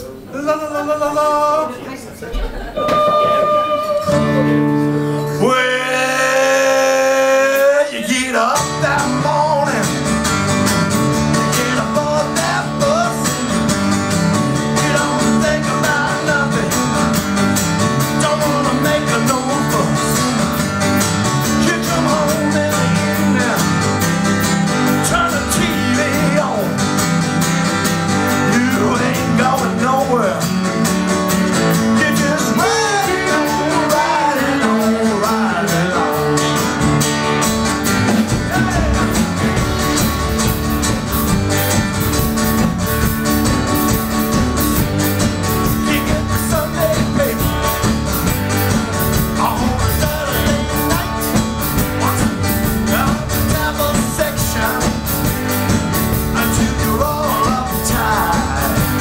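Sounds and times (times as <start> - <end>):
live rock band playing: 2.5 - 59.0.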